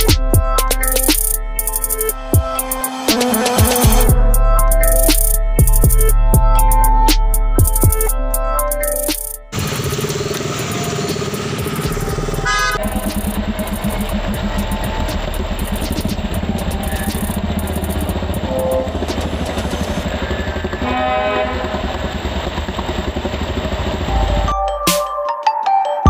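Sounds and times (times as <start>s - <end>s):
motorcycle engine running: 0.0s - 6.6s, 8.9s - 24.5s
vehicle horn honking: 20.6s - 22.0s.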